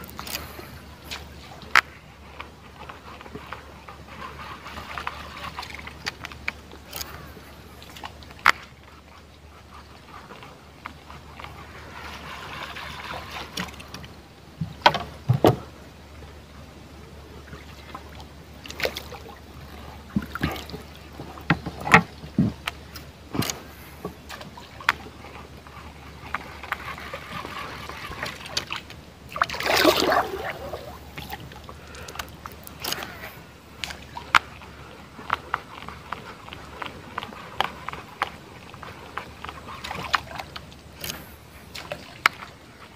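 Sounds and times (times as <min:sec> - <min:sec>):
water lapping and trickling: 0:00.0 - 0:42.9
knocks against boat hull: 0:14.6 - 0:15.7
water splash: 0:26.7 - 0:34.4.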